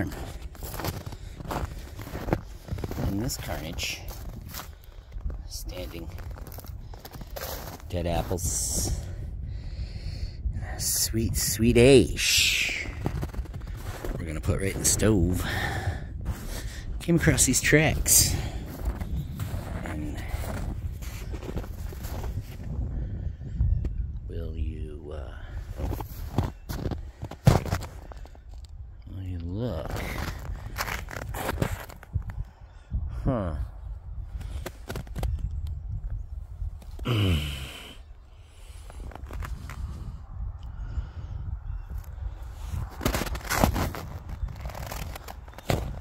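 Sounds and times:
footsteps on snow and twigs: 0.0 - 8.3, 12.7 - 15.0, 18.3 - 22.7, 25.7 - 28.6, 29.9 - 32.2, 38.9 - 39.9, 42.7 - 46.0
wind buffeting microphone: 0.0 - 46.0.

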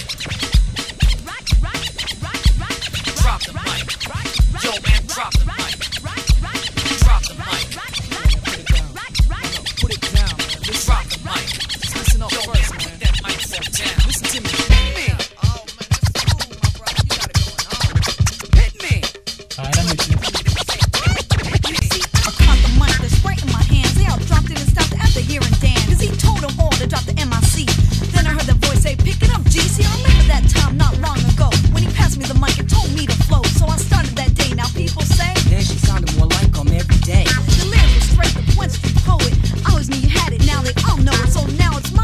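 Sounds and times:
bass line: 0.0 - 15.6, 18.4 - 20.4, 22.3 - 42.0
hip-hop beat: 0.0 - 42.0
turntable scratching: 0.0 - 42.0
heavy kick drum: 14.0 - 16.8, 17.4 - 19.0, 22.4 - 42.0.

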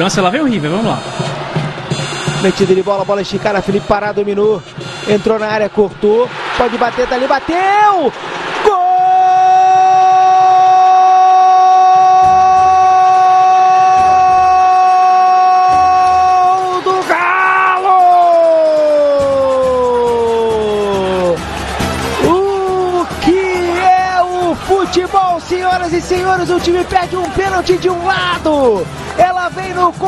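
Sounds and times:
commentator shouting: 8.7 - 21.4, 22.2 - 30.0.

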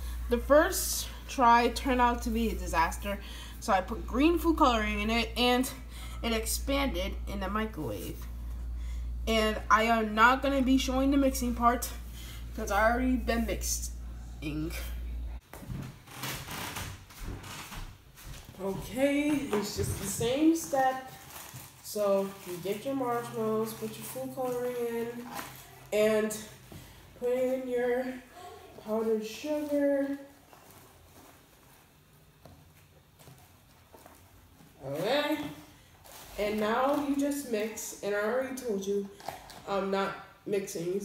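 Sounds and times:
low steady hum: 0.0 - 41.0.

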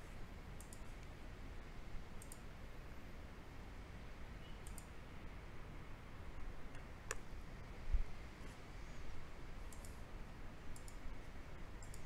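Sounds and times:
low room noise: 0.0 - 12.0
computer mouse clicking: 0.6 - 1.1, 2.2 - 2.5, 4.6 - 4.9, 9.7 - 10.1, 10.7 - 11.1, 11.8 - 12.0.

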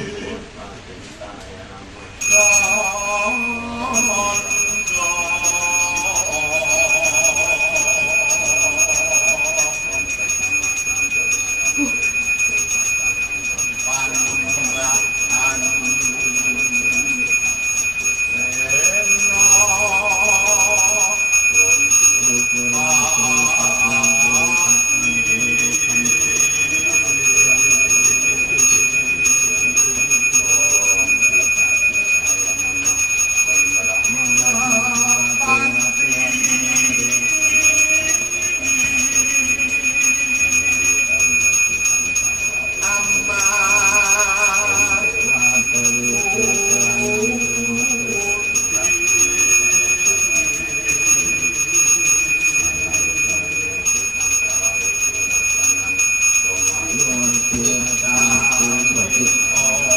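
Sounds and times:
voice chanting: 2.2 - 49.4, 56.7 - 59.9
hand bell ringing: 2.2 - 59.9.

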